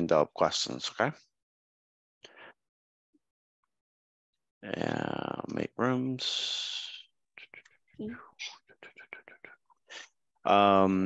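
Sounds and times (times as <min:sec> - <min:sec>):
person whispering: 0:04.7 - 0:11.0.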